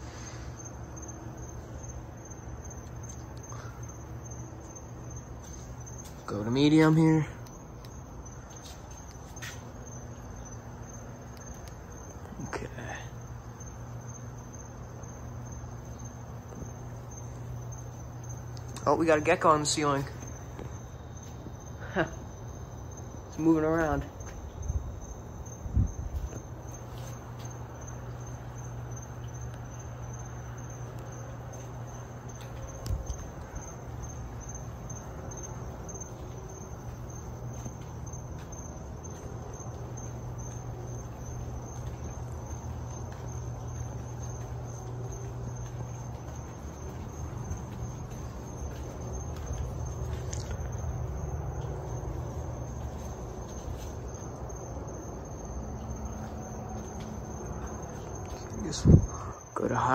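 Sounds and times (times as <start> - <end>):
ceiling fans humming: 0.0 - 59.9
crickets chirping: 0.0 - 59.9.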